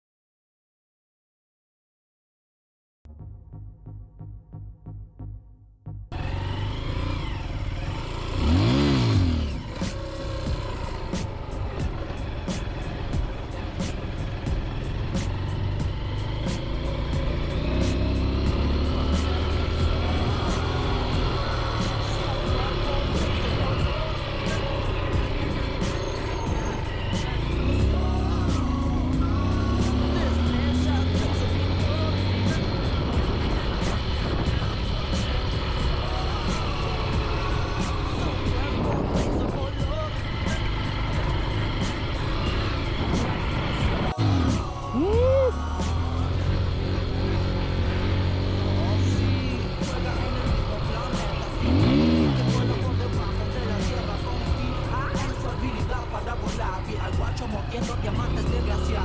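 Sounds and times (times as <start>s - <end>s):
motorcycle engine revving: 6.1s - 59.0s.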